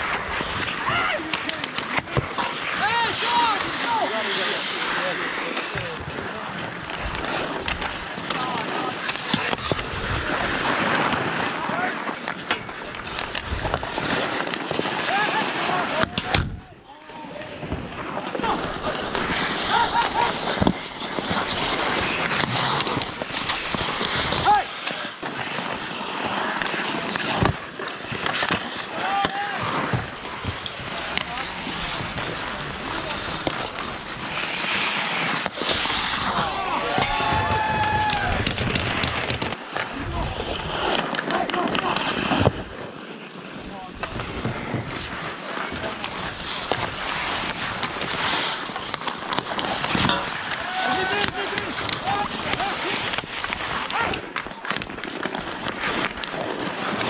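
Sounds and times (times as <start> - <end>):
hockey sticks and puck clacking: 0.0 - 57.0
skates scraping on ice: 0.0 - 57.0
players shouting: 2.6 - 5.2, 13.9 - 20.6, 28.8 - 32.5, 35.6 - 38.6, 50.3 - 54.3.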